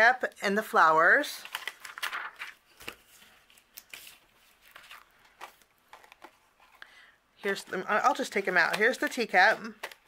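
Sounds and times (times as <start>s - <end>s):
plastic sleeve crinkling: 1.4s - 6.4s.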